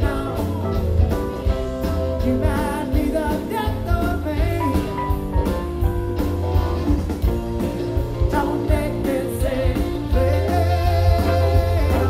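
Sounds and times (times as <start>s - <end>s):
man singing: 0.0s - 1.1s, 2.0s - 5.3s, 7.5s - 12.0s
electric guitar: 0.0s - 12.0s
heavy bass: 0.0s - 12.0s.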